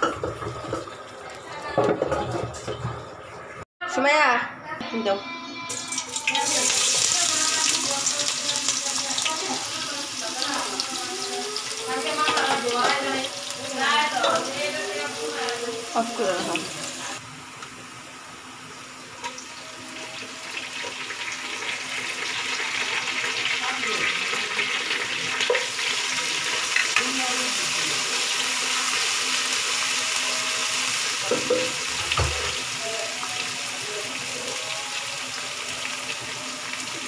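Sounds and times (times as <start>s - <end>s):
onions sizzling in hot oil: 5.7s - 37.0s.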